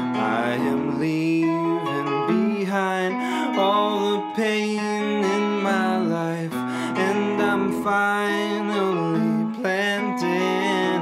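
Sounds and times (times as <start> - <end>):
electric guitar melodic line: 0.0 - 11.0.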